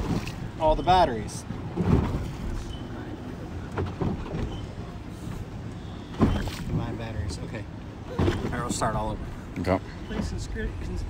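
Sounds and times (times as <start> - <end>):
water washing around boat: 0.0 - 11.0.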